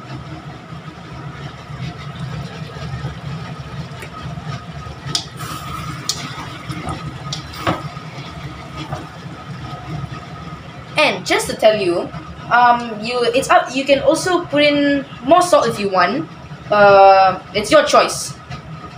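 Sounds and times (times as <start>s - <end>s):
gas stove hum and hiss: 0.0s - 18.9s.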